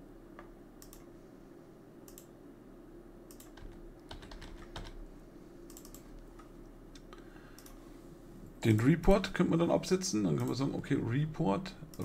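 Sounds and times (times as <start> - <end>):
faint steady hum: 0.0 - 12.0
computer keys clicking: 0.8 - 1.1, 2.1 - 2.3, 3.3 - 5.0, 5.7 - 6.0, 7.0 - 7.8.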